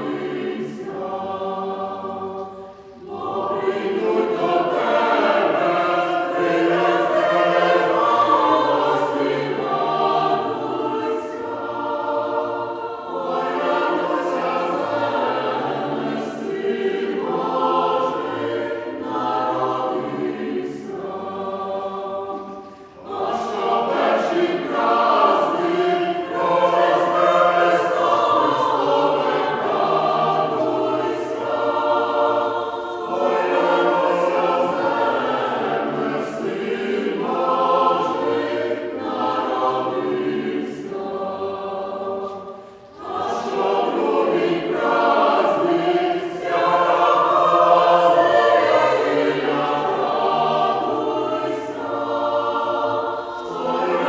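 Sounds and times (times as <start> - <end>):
choir singing a carol: 0.0 - 54.0.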